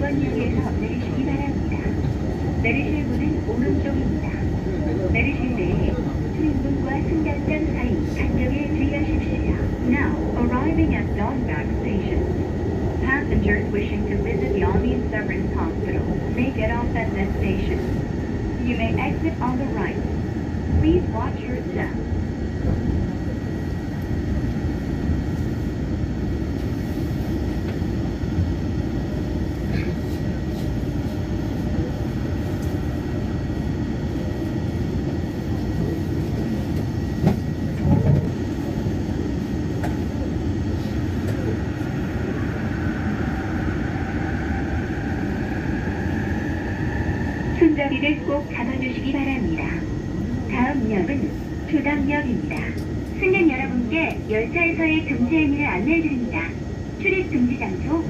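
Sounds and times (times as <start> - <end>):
train rumbling on elevated track: 0.0 - 58.0.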